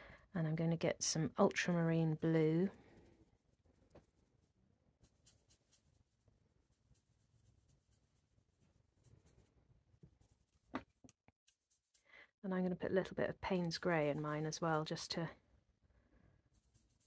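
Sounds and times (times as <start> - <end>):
brush scratching on palette: 1.6 - 12.1, 13.4 - 15.1, 16.4 - 17.0.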